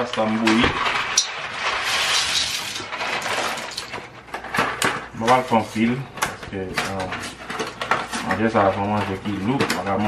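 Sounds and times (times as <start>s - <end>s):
dry pasta rattling into pot: 0.0s - 4.0s.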